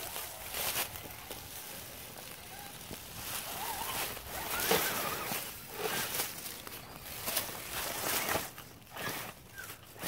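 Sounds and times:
dry leaves crunching and rustling: 0.0s - 10.0s.

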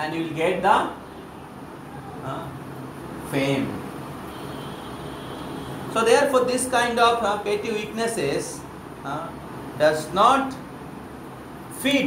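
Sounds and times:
room hiss and hum: 0.0s - 12.0s.

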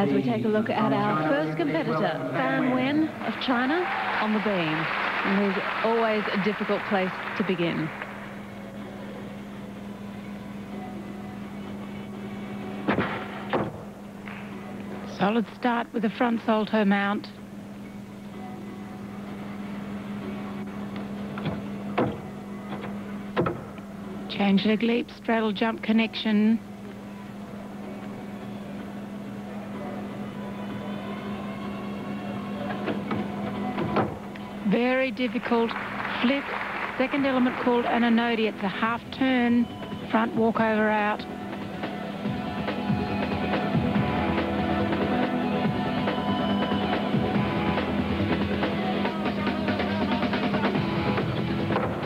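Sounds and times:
arena low hum: 0.0s - 52.0s
gymnast thumps on springboard and beam: 12.9s - 13.9s, 23.4s - 23.8s.

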